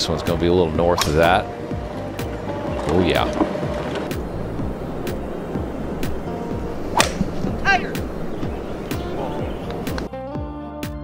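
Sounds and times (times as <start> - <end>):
background music with beat: 1.0 - 11.0
golf club striking ball: 4.8 - 10.1.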